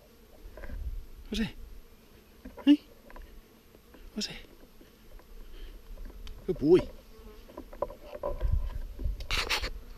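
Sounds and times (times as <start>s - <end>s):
insect buzzing: 0.0s - 9.9s.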